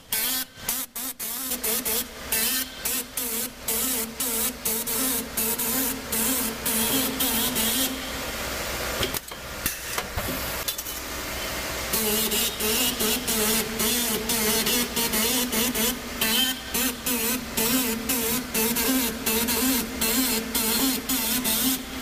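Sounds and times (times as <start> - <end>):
press hissing bursts: 0.0 - 9.0, 10.4 - 22.0
machine hum: 0.0 - 22.0.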